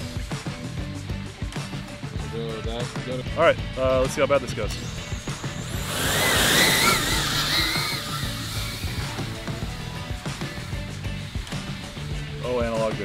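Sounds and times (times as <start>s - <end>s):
background music: 0.0s - 13.0s
drone motors whining: 4.7s - 12.3s.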